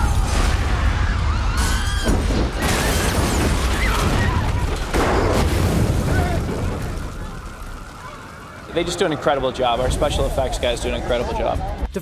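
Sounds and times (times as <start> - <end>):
explosion rumble: 0.0 - 11.8.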